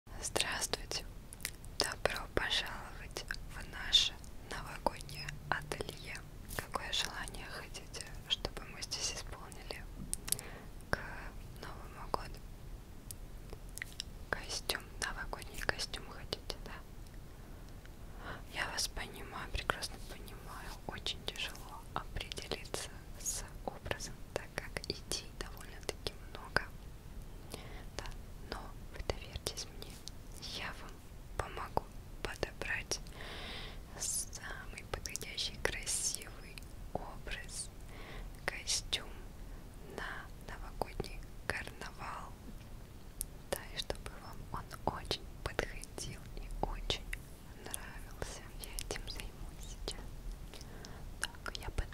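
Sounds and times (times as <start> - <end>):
woman whispering: 0.1 - 12.4, 13.5 - 16.9, 18.2 - 26.8, 27.5 - 33.2, 33.8 - 37.8, 38.4 - 42.4, 43.5 - 51.9.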